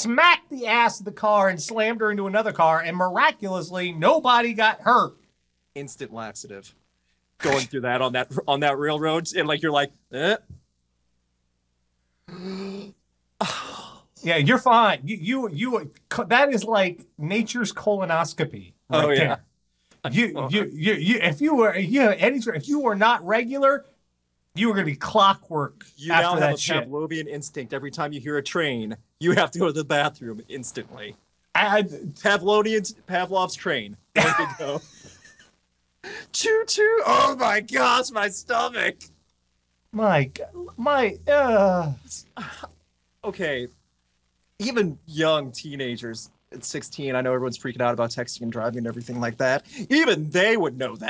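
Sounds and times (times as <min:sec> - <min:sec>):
man sighing: 0:12.3 - 0:14.1, 0:36.0 - 0:36.3, 0:42.4 - 0:42.8
man laughing loudly: 0:34.2 - 0:35.5.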